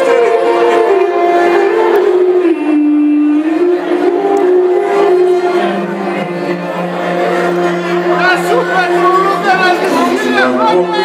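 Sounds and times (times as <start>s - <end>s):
clarinet melody: 0.0s - 11.0s
folk band playing: 0.0s - 11.0s.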